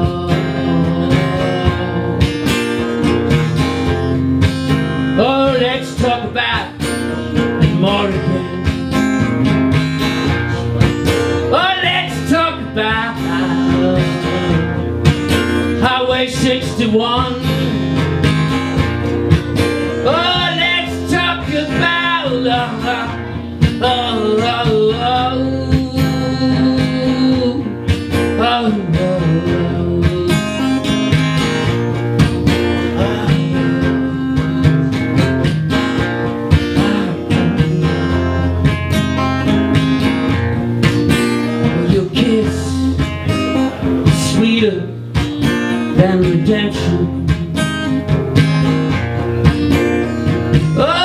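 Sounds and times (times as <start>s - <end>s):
man singing: 0.0s - 18.9s, 19.6s - 40.4s, 41.1s - 48.5s, 49.4s - 51.0s
acoustic guitar strumming: 0.0s - 51.0s.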